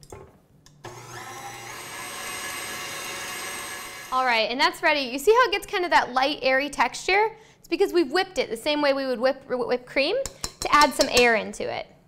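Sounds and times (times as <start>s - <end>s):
stand mixer motor whine: 0.8s - 4.1s.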